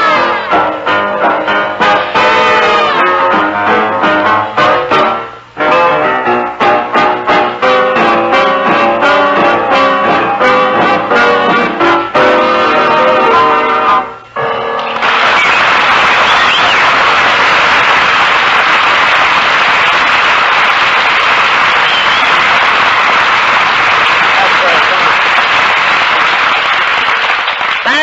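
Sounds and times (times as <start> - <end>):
big band music: 0.0 - 14.1
studio audience applauding: 14.8 - 28.0.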